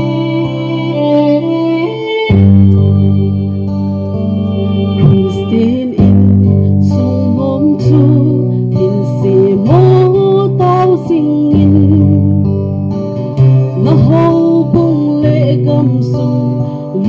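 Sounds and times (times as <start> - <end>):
woman singing into microphone: 0.0 - 3.8, 4.4 - 12.6, 13.4 - 17.0
instrumental accompaniment: 0.0 - 17.0.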